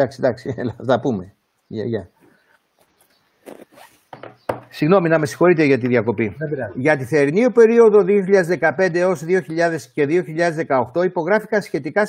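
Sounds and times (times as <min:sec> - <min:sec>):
faint rasping rustles: 0:02.2 - 0:04.4.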